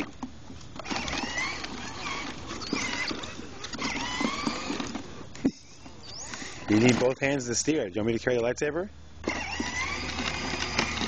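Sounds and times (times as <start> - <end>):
toy electric motor whining: 0.8 - 5.3, 6.1 - 7.2, 9.2 - 11.0.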